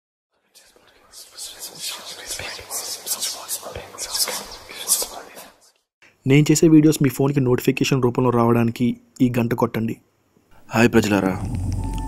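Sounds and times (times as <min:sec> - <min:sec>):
person whispering: 0:00.4 - 0:05.7.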